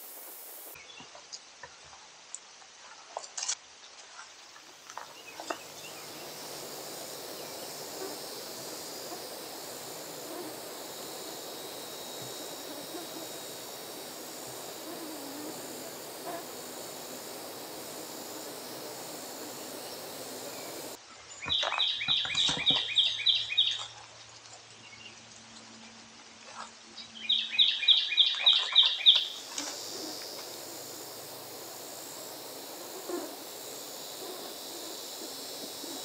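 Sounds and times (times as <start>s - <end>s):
high insect drone: 0.0s - 0.8s, 5.2s - 21.0s, 28.8s - 36.0s.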